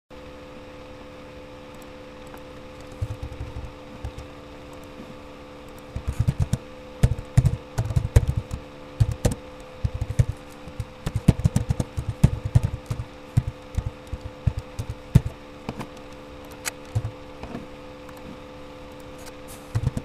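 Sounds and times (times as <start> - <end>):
steady low hum: 0.1 - 20.0
computer keyboard typing: 1.8 - 5.0, 5.7 - 17.2, 19.7 - 20.0.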